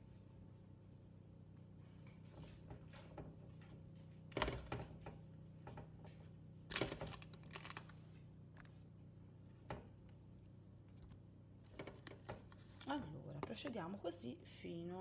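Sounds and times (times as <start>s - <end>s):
steady low hum: 0.0s - 15.0s
foil tray crinkling: 6.7s - 8.7s.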